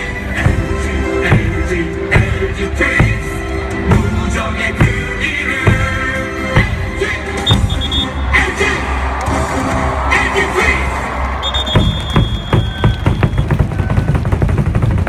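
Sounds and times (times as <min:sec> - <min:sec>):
cheer song over loudspeakers: 0:00.0 - 0:15.0
fast sharp beats: 0:00.4 - 0:08.4, 0:09.2 - 0:15.0.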